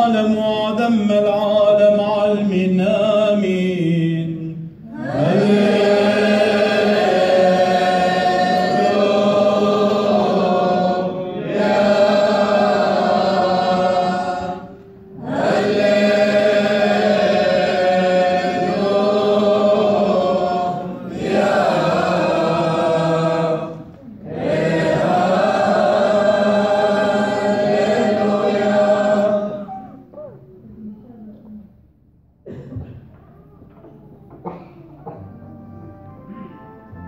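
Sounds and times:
men chanting a hymn: 0.0 - 29.9.

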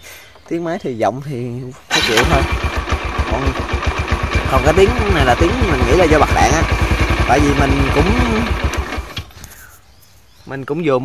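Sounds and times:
motorcycle engine idling: 1.9 - 9.4.

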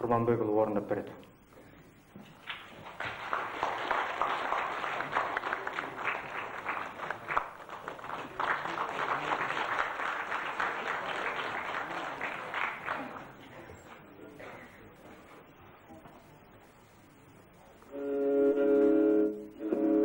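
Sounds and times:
audience applauding: 2.3 - 14.0.

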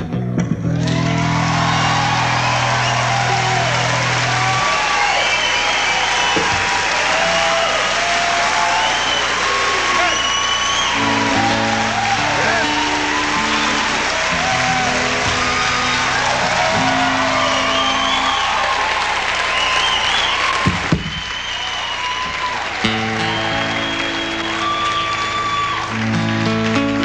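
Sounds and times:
audience applauding and cheering: 0.7 - 27.0
whoops and whistles: 1.6 - 3.7, 4.9 - 7.6, 8.6 - 13.9, 15.3 - 18.8, 19.4 - 26.0
acoustic guitar chords: 25.9 - 27.0.

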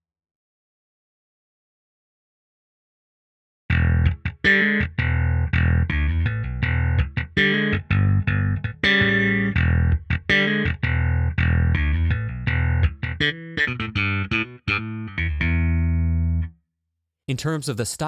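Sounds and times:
slapped electric bass line: 3.7 - 16.5.

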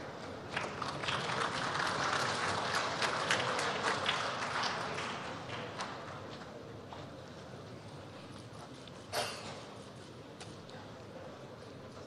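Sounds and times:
large audience applause: 0.5 - 6.2.

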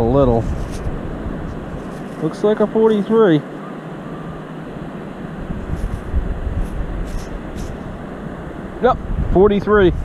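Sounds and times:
wind buffeting microphone: 0.0 - 10.0
faint scratches: 0.3 - 0.9, 1.6 - 3.0, 5.6 - 7.9.

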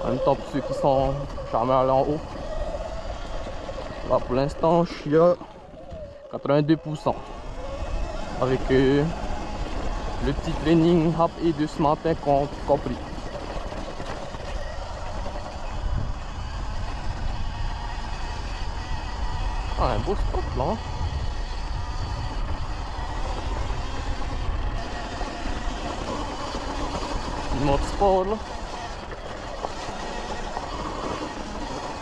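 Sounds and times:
faint electric motor whine: 0.0 - 32.0
wind and tyres rumbling: 0.0 - 32.0.

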